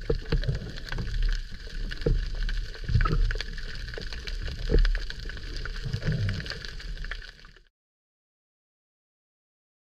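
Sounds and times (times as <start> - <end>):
underwater rumble of moving water: 0.0 - 7.7.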